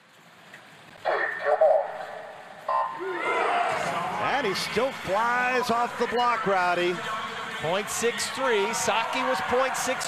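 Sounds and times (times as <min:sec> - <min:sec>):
starter's call over loudspeakers: 0:01.0 - 0:10.0.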